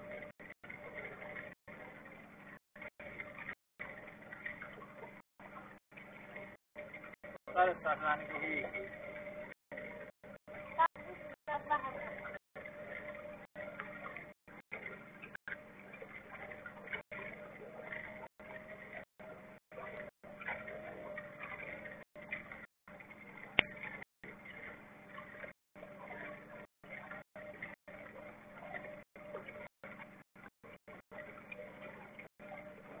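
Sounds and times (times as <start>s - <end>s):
boat motor humming: 0.0s - 33.0s.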